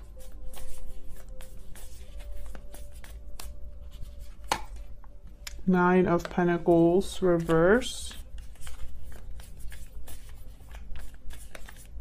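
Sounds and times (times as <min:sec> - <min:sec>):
cards shuffled on table: 0:00.5 - 0:04.9, 0:06.2 - 0:11.9.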